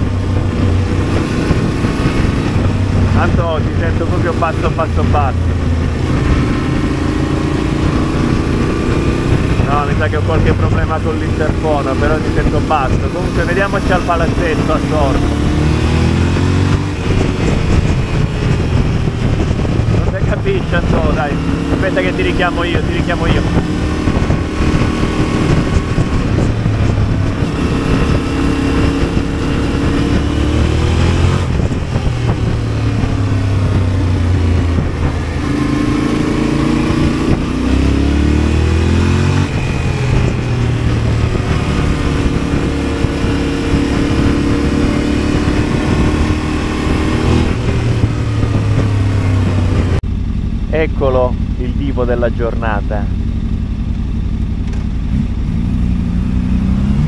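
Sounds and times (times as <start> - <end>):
motorcycle engine accelerating: 0.0 - 57.0
wind noise: 0.0 - 57.0.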